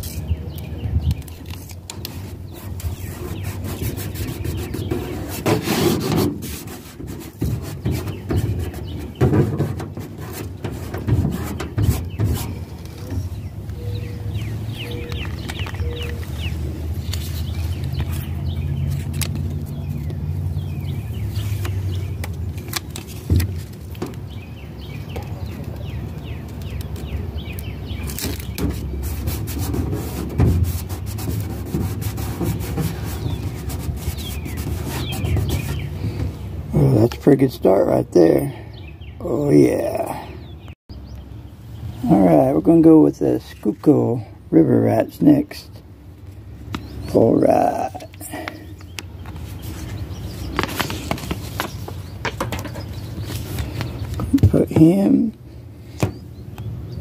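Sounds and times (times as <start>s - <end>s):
stickers crinkling and rubbing: 21.4s - 24.1s, 47.6s - 55.0s.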